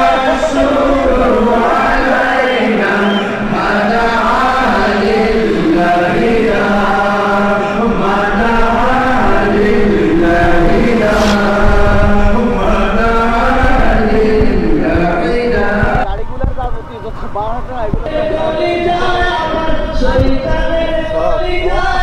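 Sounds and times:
voices chanting: 0:00.0 - 0:11.6
steady low drone: 0:10.1 - 0:13.4.

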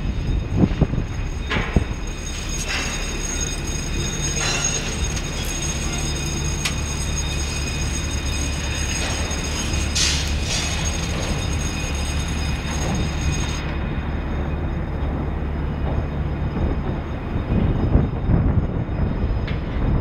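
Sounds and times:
crane machinery low drone: 0:00.0 - 0:20.0
high machinery whines: 0:00.0 - 0:20.0
metallic squeals: 0:00.0 - 0:20.0.

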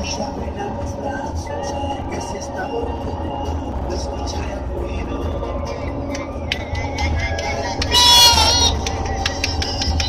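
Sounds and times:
tyre and engine rumble: 0:00.0 - 0:10.0.

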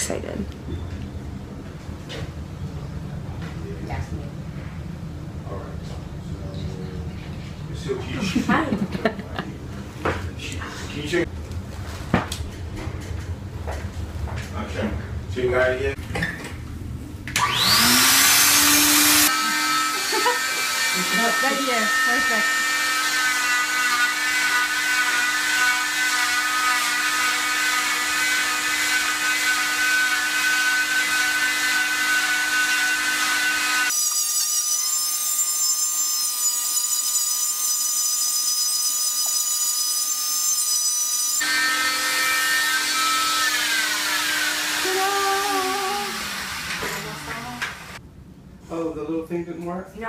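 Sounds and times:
cast saw motor whining: 0:17.4 - 0:48.0.

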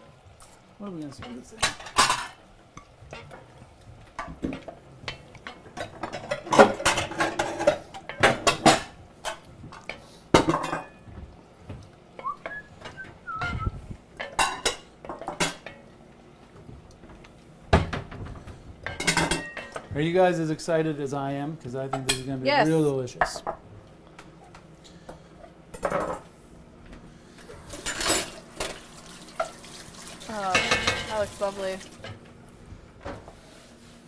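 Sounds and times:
utensils clinking against pots and plates: 0:01.0 - 0:03.5, 0:04.2 - 0:11.1, 0:12.2 - 0:15.9, 0:18.8 - 0:20.0, 0:21.8 - 0:23.6, 0:27.6 - 0:32.2.

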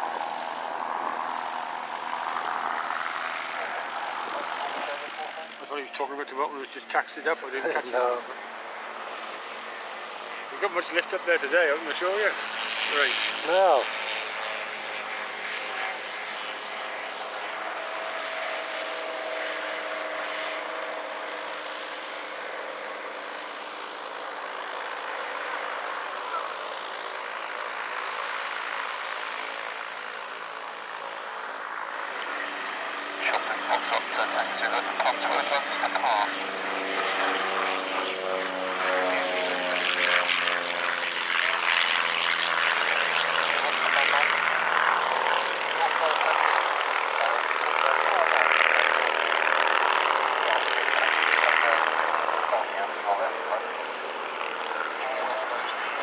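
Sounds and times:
propeller aircraft engine drone: 0:00.0 - 0:56.0.

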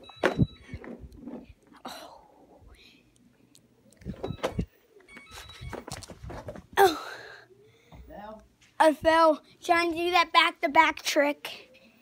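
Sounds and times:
thumps and knocks: 0:00.0 - 0:01.5.

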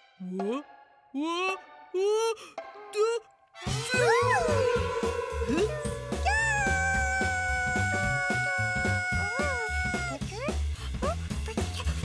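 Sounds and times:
cheerful cartoon music: 0:00.0 - 0:12.0
cartoon character squeaky vocals: 0:03.9 - 0:04.7, 0:05.5 - 0:11.2.

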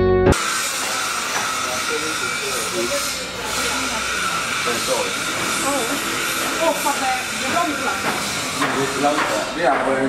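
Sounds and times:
background music: 0:00.0 - 0:00.4
faint indistinct voices: 0:00.5 - 0:10.0.

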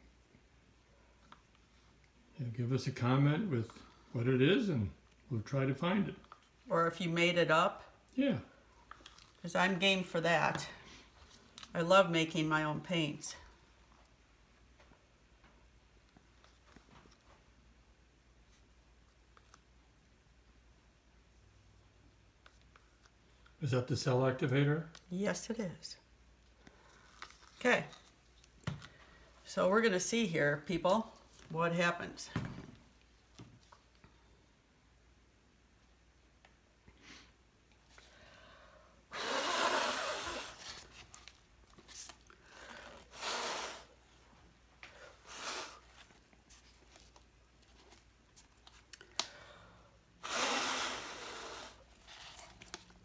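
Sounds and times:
person blowing a puff of air: 0:39.1 - 0:40.6, 0:42.7 - 0:44.0, 0:45.0 - 0:46.0, 0:50.2 - 0:52.0.

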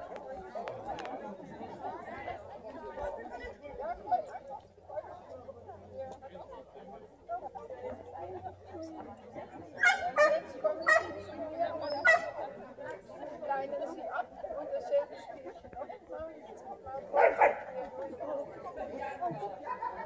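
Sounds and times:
people chatting: 0:00.0 - 0:20.0
dog barking: 0:09.8 - 0:11.1, 0:17.2 - 0:17.6.

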